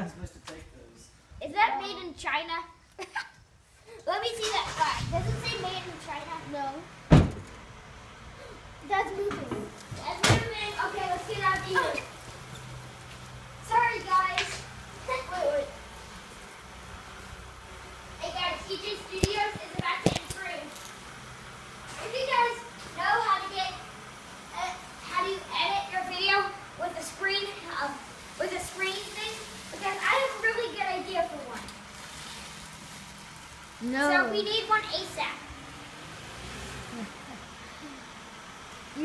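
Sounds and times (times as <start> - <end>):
background hiss: 0.0 - 39.0
outdoor background noise: 0.0 - 39.0.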